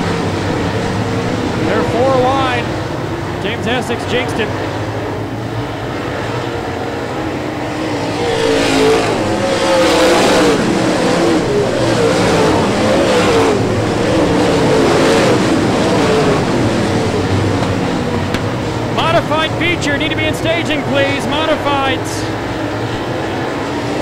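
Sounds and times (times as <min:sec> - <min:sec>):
race car engines running hard: 0:00.0 - 0:24.0.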